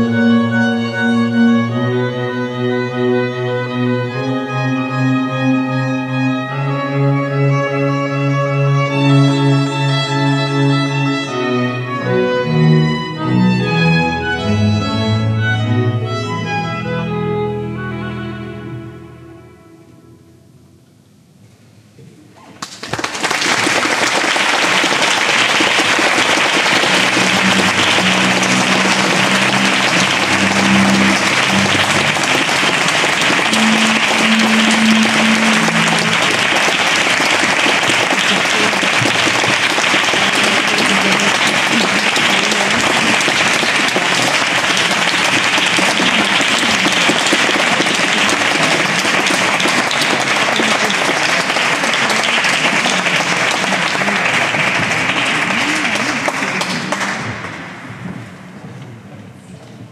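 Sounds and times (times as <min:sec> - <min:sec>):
audience applause: 0:22.6 - 0:58.0.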